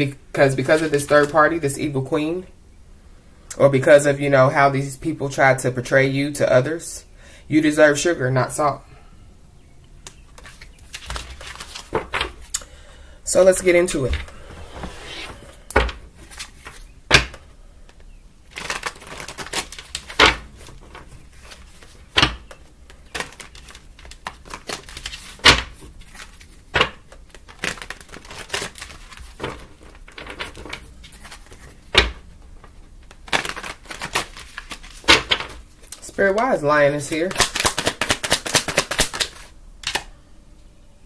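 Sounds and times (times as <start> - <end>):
cards being shuffled: 10.1 - 12.6, 13.5 - 40.1.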